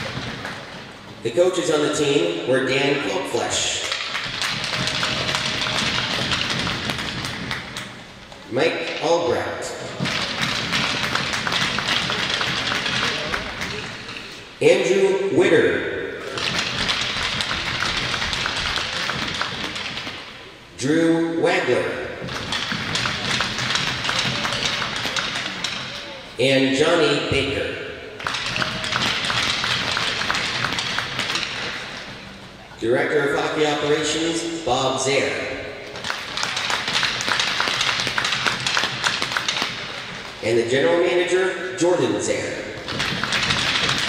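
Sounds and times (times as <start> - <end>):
crowd applause: 4.0 - 7.9, 10.0 - 14.1, 16.4 - 19.8, 22.3 - 25.6, 28.2 - 32.2, 36.0 - 40.3.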